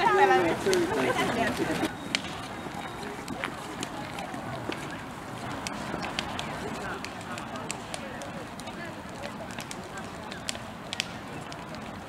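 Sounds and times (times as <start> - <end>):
bonfire crackling and popping: 0.0 - 12.0
faint crowd voices: 0.0 - 12.0.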